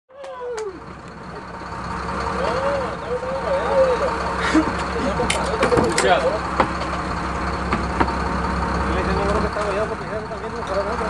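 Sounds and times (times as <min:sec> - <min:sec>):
boat engine running: 0:00.4 - 0:11.0.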